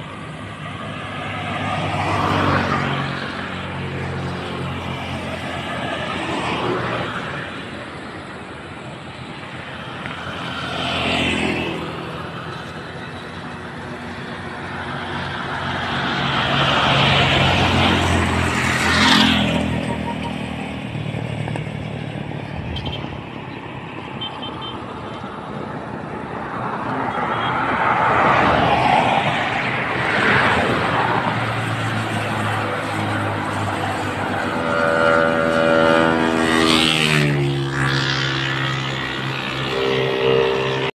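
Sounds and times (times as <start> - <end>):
cars driving by: 0.0 - 40.9
motor scooter passing: 0.0 - 40.9.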